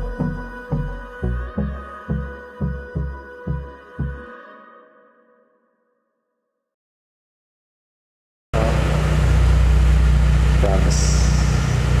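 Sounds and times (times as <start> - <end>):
car engine idling: 8.6 - 12.0.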